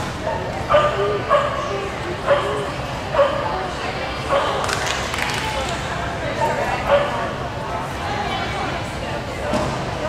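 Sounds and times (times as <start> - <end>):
dog barking excitedly: 0.3 - 3.5.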